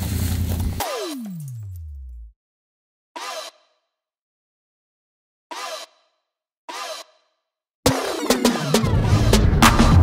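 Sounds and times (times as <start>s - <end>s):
music with heavy bass: 7.9s - 10.0s.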